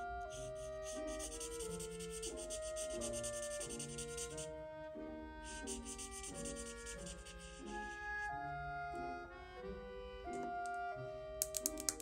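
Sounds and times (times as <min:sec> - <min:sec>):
slow background music: 0:00.0 - 0:12.0
marker rubbing on paper: 0:00.3 - 0:04.5, 0:05.5 - 0:07.7.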